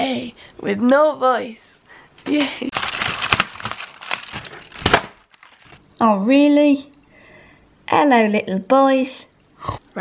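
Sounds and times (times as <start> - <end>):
cardboard crinkling and tearing: 2.7 - 5.8.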